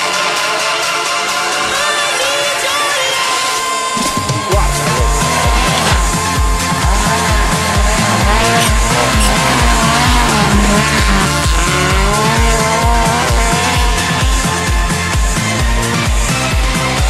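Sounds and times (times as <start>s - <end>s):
music with thumping beat: 4.0s - 17.0s
rally car engine revving: 4.0s - 17.0s.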